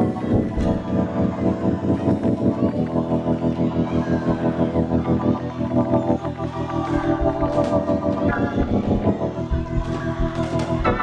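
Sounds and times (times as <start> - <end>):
organ chords: 0.0 - 11.0
drum kit beat: 6.6 - 11.0.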